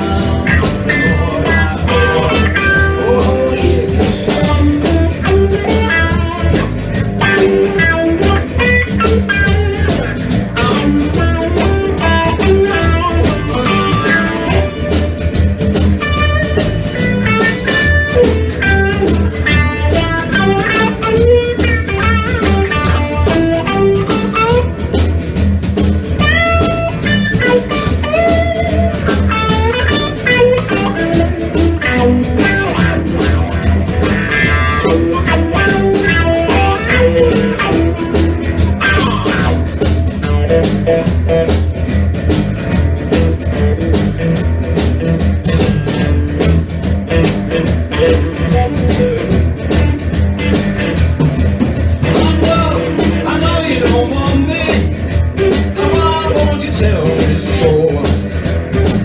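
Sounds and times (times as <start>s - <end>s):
drum kit: 0.0s - 59.0s
electric bass: 0.0s - 59.0s
electric guitar lines: 0.0s - 59.0s.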